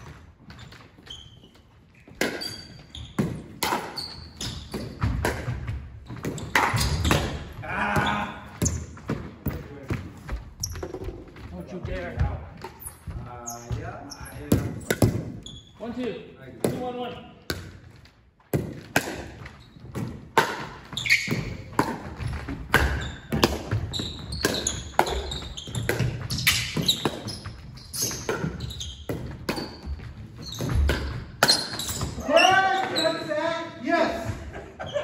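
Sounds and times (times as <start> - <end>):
ball bouncing on wooden floor: 2.1 - 15.5, 17.4 - 32.2.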